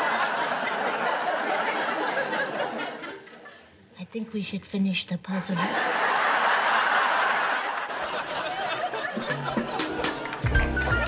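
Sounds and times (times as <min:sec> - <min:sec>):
studio audience laughing: 0:00.0 - 0:03.7, 0:05.5 - 0:11.0.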